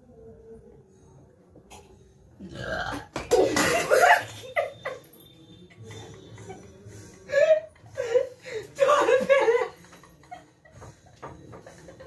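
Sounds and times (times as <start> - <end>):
loud drawn-out burp: 2.4 - 3.2.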